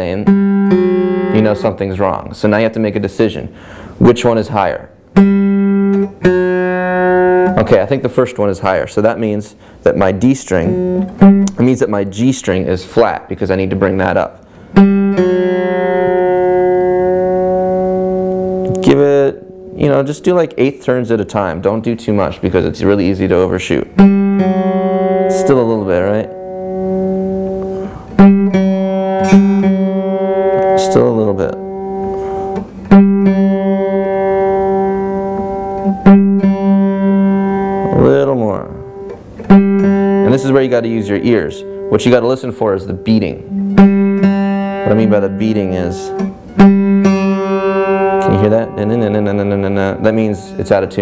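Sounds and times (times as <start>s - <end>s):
acoustic guitar strings ringing: 0.0s - 2.7s, 4.5s - 9.3s, 10.1s - 12.4s, 13.6s - 20.8s, 23.8s - 51.0s.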